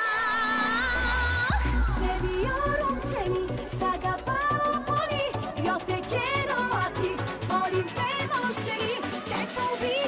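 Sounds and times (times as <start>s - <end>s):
dance-pop backing music: 0.0s - 10.0s
woman singing with vibrato: 0.0s - 10.0s.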